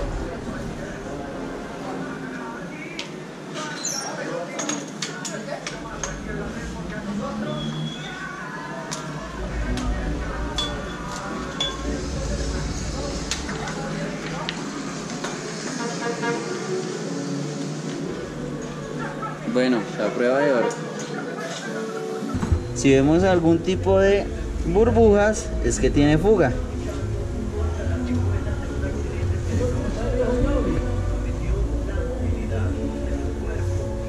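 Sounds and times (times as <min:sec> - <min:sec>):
voices in background: 0:00.0 - 0:34.0.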